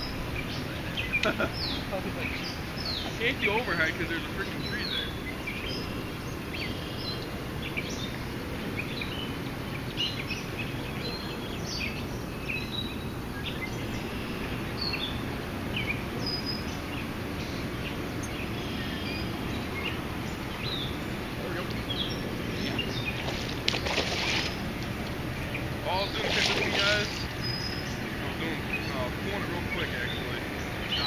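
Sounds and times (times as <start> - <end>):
small birds chirping: 0.0 - 31.0.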